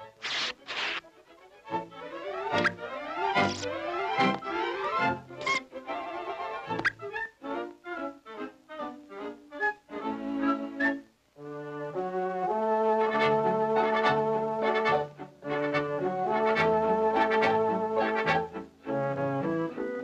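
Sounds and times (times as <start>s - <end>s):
cartoon orchestral music with brass: 0.0s - 20.0s.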